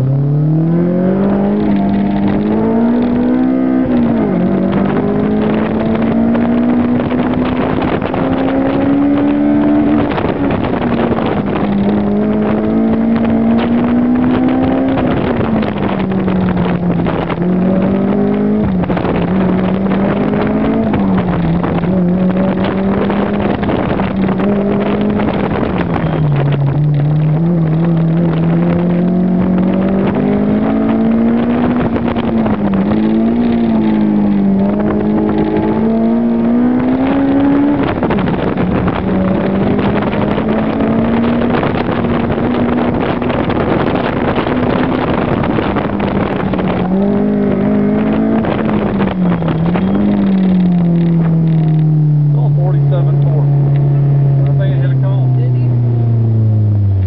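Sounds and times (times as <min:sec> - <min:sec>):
car engine revving: 0:00.0 - 0:57.0
wind and road noise: 0:00.0 - 0:57.0.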